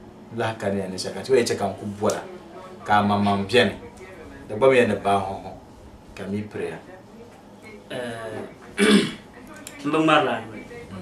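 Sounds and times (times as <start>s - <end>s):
man talking: 2.8s - 3.8s, 4.4s - 5.6s
loud throat-clearing: 8.8s - 9.2s.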